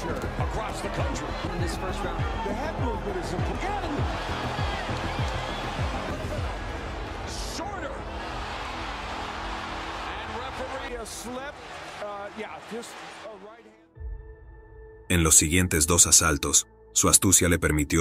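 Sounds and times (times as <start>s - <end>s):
crowd shouting: 0.0s - 13.8s
background music: 0.0s - 18.0s.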